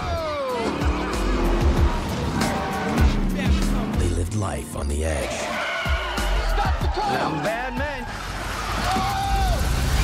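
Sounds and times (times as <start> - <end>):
trailer music: 0.0 - 10.0
car engine: 0.4 - 4.3.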